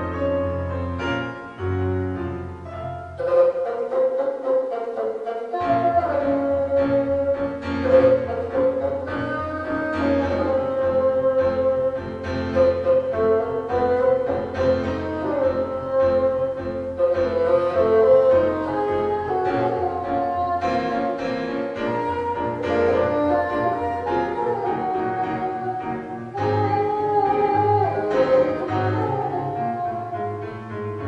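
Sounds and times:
bassoon playing tango melody: 0:00.0 - 0:31.0
piano accompaniment: 0:00.0 - 0:31.0.

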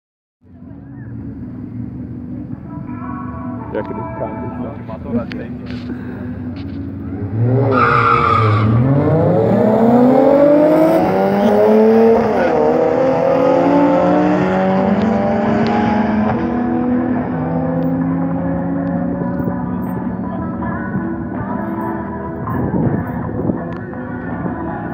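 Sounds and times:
car engines revving hard: 0:07.0 - 0:20.2.

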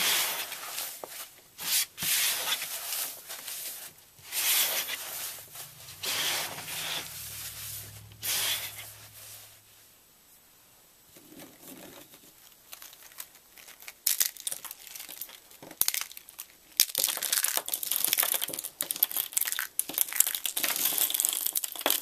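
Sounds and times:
soap flakes crunching: 0:12.4 - 0:22.0.

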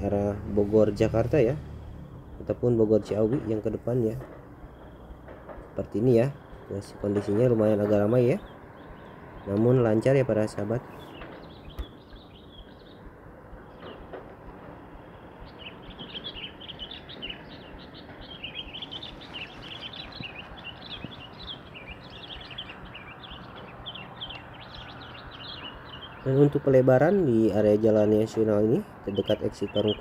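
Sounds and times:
birds chirping: 0:00.0 - 0:30.0.

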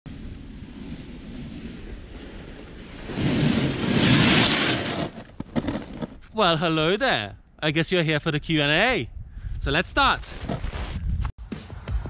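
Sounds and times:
snowboard sliding over snow: 0:00.1 - 0:06.3, 0:10.0 - 0:11.3
wind noise on microphone: 0:08.4 - 0:11.4.

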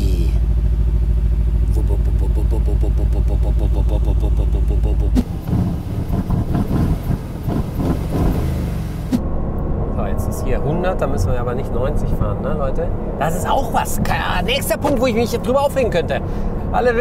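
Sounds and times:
car engine idling: 0:00.0 - 0:17.0
engine and road noise: 0:00.0 - 0:17.0
in-cabin driving noise: 0:00.0 - 0:17.0.

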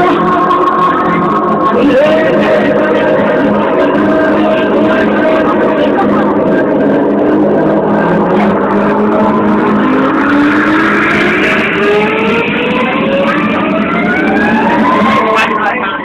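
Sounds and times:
loud dance music: 0:00.0 - 0:16.0
rising pitch sweep: 0:00.0 - 0:16.0.

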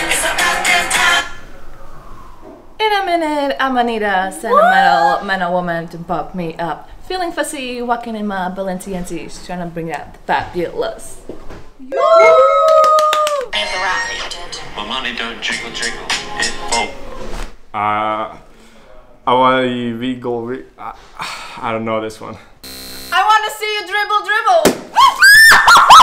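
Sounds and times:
voices cheering woo: 0:04.5 - 0:05.2, 0:11.9 - 0:13.6, 0:25.0 - 0:26.0
people clapping: 0:12.2 - 0:13.6
water balloon bursting: 0:24.6 - 0:25.2
people screaming and shrieking: 0:25.0 - 0:26.0.

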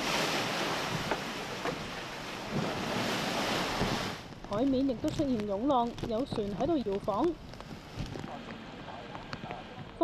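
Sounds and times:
storm-driven water rushing: 0:00.0 - 0:05.2, 0:05.9 - 0:10.0
water splashing: 0:00.0 - 0:10.0
wind: 0:00.0 - 0:10.0.

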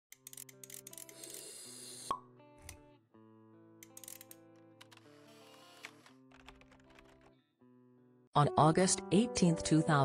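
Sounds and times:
music: 0:00.1 - 0:10.0.

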